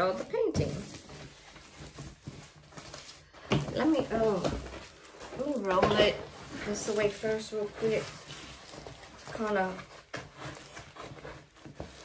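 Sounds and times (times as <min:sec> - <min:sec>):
canvas rustling and crinkling: 0:00.0 - 0:12.0.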